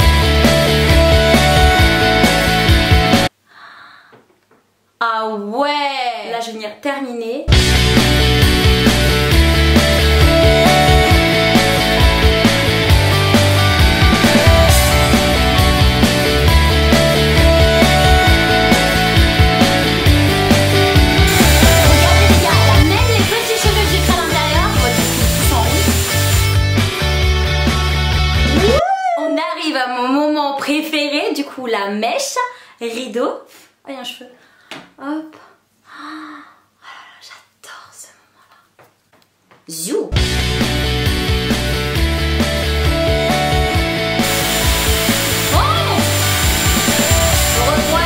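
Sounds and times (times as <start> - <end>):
rock music with heavy bass: 0.0 - 3.3, 7.5 - 28.8, 40.2 - 48.0
hair styler blowing air: 20.8 - 26.7, 44.2 - 48.0
high motor whine: 21.0 - 26.6, 44.2 - 48.0
person speaking: 21.3 - 26.4, 44.5 - 48.0.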